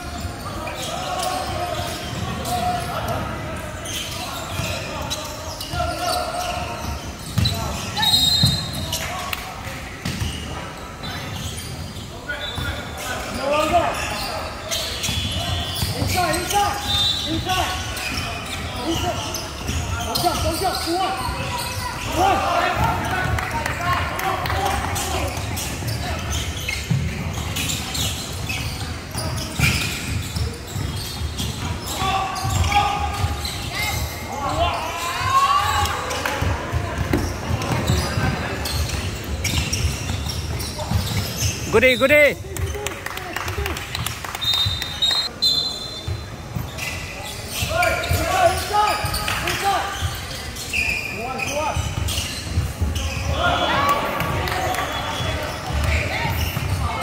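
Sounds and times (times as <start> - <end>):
indistinct shouts and chatter: 0.0 - 57.0.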